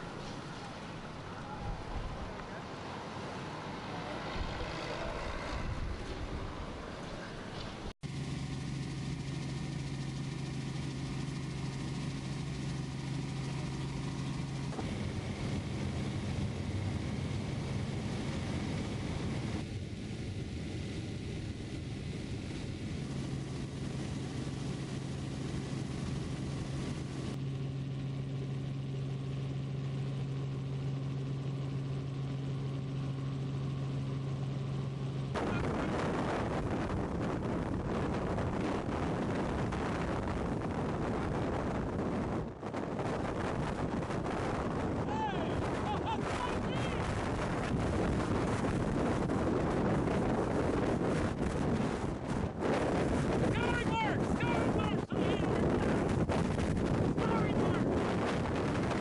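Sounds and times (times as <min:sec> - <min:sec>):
rushing wind-like noise: 0:00.0 - 0:07.9, 0:35.3 - 0:59.0
helicopter engine and rotor hum: 0:00.0 - 0:59.0.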